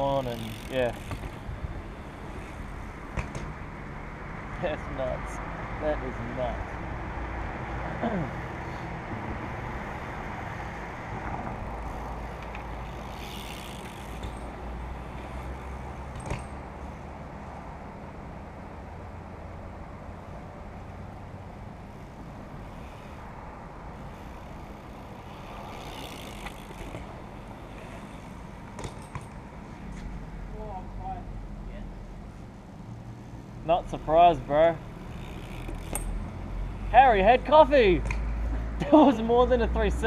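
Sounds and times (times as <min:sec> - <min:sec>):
bmx bikes knocking on concrete ramps: 0:00.0 - 0:03.8, 0:11.2 - 0:16.9, 0:24.0 - 0:30.1, 0:34.4 - 0:36.4
low rumble of road traffic: 0:00.0 - 0:40.0.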